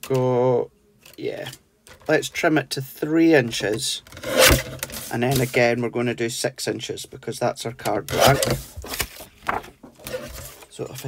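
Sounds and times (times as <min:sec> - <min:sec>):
person speaking: 0:05.0 - 0:08.6.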